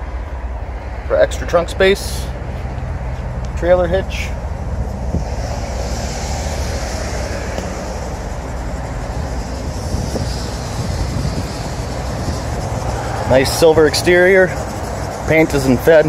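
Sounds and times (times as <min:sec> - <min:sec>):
low rumble: 0:04.1 - 0:15.4.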